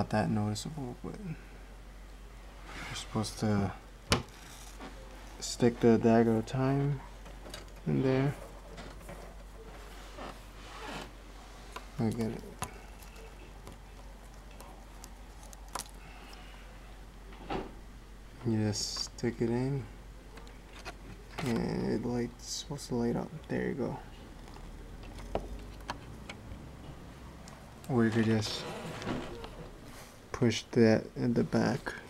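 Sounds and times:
low room hum: 0.0 - 32.0
hands rubbing plastic parts: 8.4 - 16.0.

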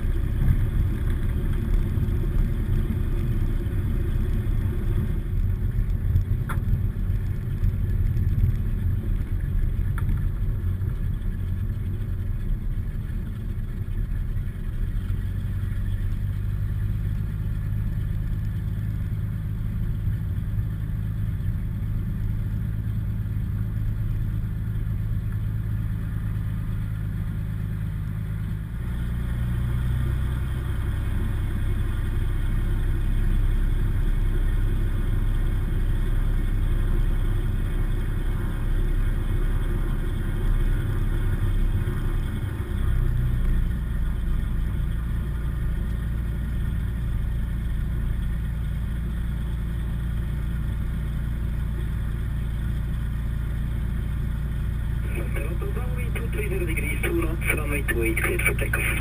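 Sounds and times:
piston engine and propeller: 0.0 - 59.0.

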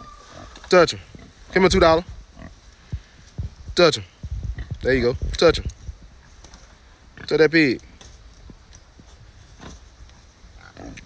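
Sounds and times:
pigs grunting: 10.6 - 11.0.

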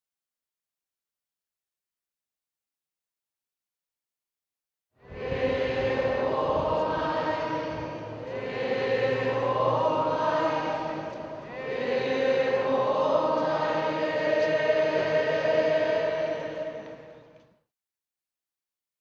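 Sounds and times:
choir singing held chords: 5.0 - 17.4.

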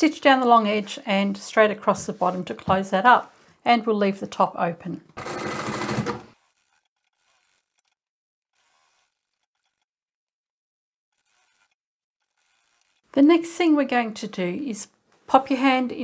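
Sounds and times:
electric sewing machine stitching: 5.1 - 9.9, 11.1 - 13.1.

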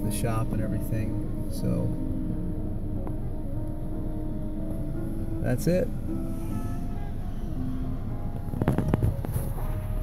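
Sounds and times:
car rumble from inside cabin: 0.0 - 10.0
soft music: 0.0 - 10.0.

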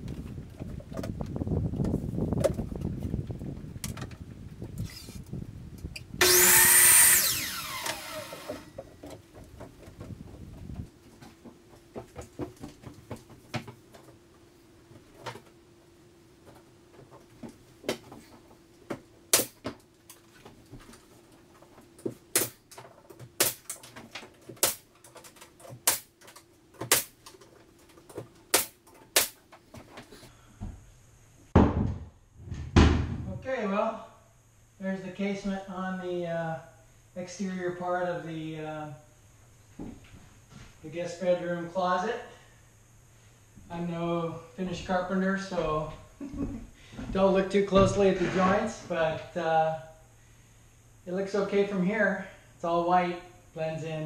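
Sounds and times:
miter saw whining: 4.8 - 5.3, 6.2 - 8.8
nail gun firing: 6.2 - 8.6, 19.3 - 19.6, 22.3 - 22.6, 23.4 - 23.8, 24.6 - 24.9, 25.8 - 26.1, 26.8 - 27.2, 28.5 - 29.4.

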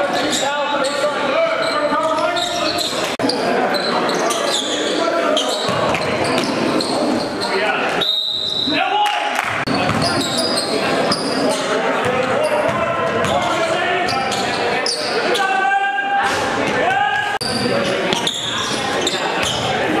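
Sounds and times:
basketball bouncing on hardwood: 9.9 - 10.1.

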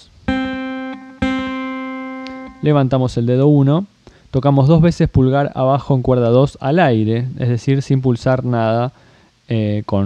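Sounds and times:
acoustic guitar string plucked: 0.3 - 2.8.

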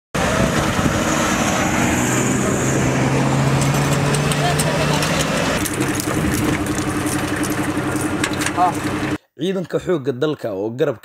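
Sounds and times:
low engine drone: 0.2 - 9.2
trucks driving on dirt track: 0.2 - 9.2.

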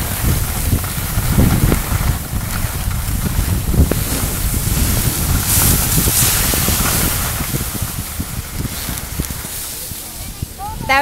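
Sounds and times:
skis sliding over snow: 0.0 - 11.0
wind buffeting microphone: 0.0 - 11.0.

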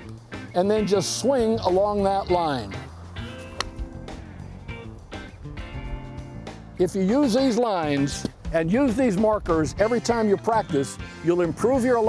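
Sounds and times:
background music: 0.0 - 12.0
golf club striking ball: 3.1 - 6.7.

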